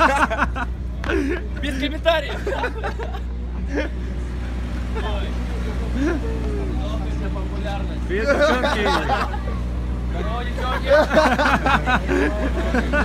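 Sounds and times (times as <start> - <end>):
low motor hum: 0.0 - 13.0
outdoor crowd chatter: 0.0 - 13.0.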